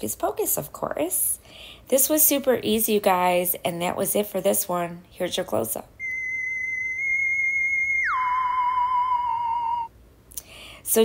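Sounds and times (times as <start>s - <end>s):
high steady electronic tone: 6.0s - 9.9s.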